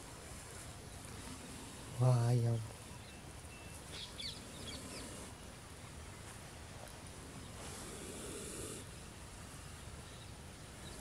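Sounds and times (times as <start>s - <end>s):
snake hissing: 7.6s - 9.0s.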